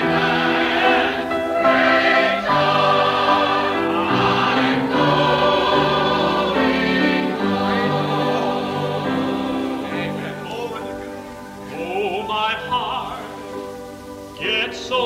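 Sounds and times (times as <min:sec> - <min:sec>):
gospel singing in harmony: 0:00.0 - 0:15.0.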